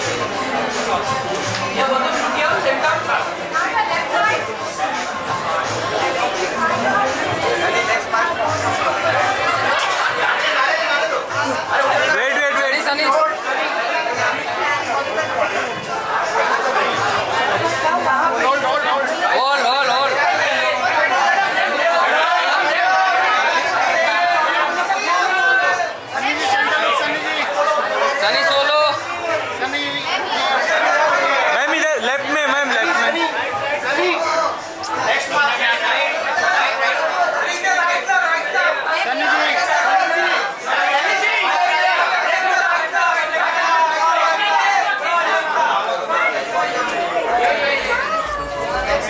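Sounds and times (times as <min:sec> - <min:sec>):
crowd chatter: 0:00.0 - 0:49.0.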